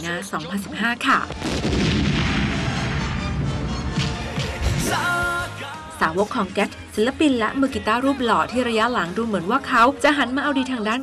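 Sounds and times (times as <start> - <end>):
loud explosion blast: 1.3 - 4.8.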